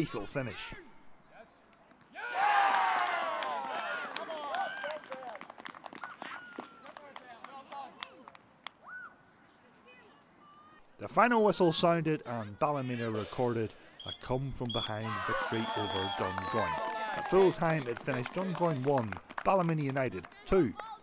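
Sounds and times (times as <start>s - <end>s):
crowd cheering and shouting: 2.2s - 4.9s, 15.0s - 18.7s.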